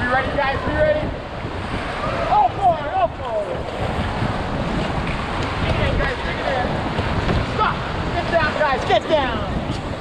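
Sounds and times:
river rapids roaring: 0.0s - 10.0s
wind buffeting microphone: 0.0s - 10.0s.

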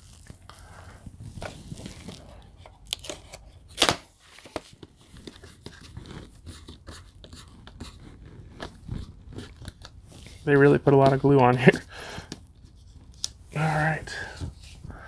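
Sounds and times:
plastic wrapping crackling: 0.0s - 3.4s.

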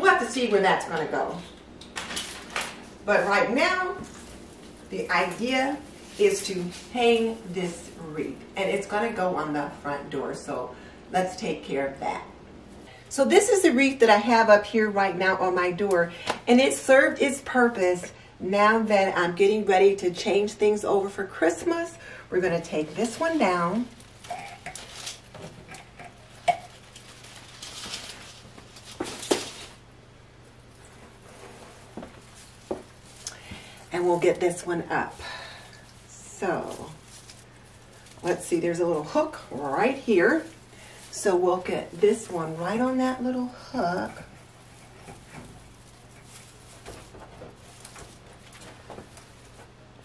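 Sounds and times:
artificial leaf wreath rustling: 0.0s - 15.9s, 18.6s - 50.0s
low steady hum: 0.0s - 50.0s.

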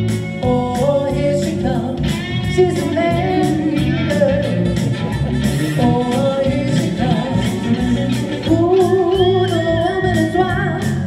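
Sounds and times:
amplified electric guitar: 0.0s - 11.0s
woman singing pop song: 0.1s - 11.0s.

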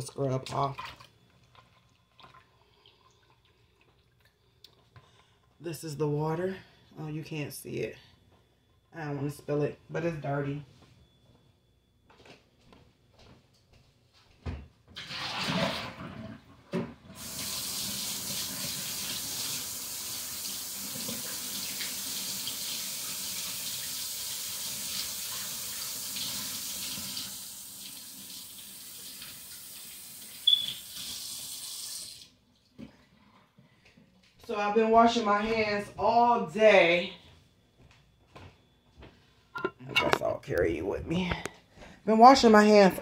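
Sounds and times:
tap water running: 14.9s - 32.9s.

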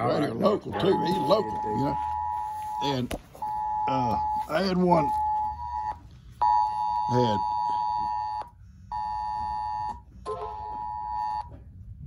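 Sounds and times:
phone emergency alert two-note tone: 0.7s - 11.5s.

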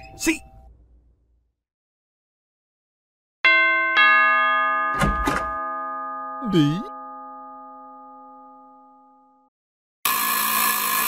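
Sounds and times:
electronic doorbell ding-dong: 3.4s - 9.5s.

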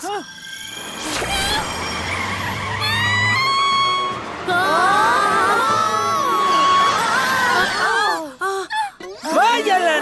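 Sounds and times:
rising whine: 0.4s - 7.6s
background music: 0.8s - 8.6s.

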